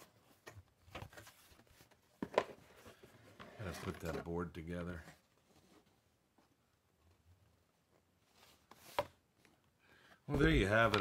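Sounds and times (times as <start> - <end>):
cardboard rustling: 0.0 - 9.6.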